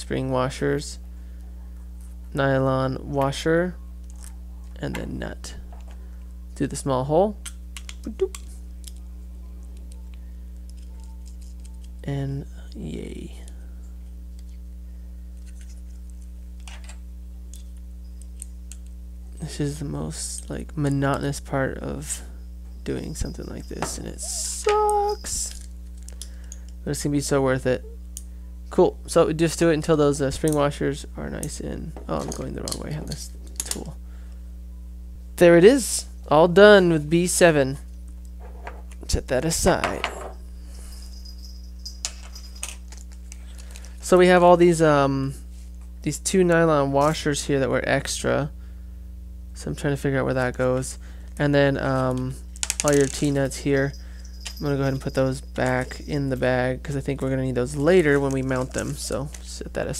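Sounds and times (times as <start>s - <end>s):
steady low hum: 0.0s - 59.9s
plastic zip bag crinkling: 58.0s - 59.5s.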